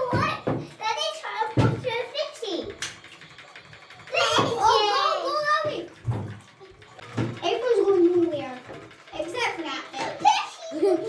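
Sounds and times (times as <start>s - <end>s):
children chattering: 4.0s - 11.0s.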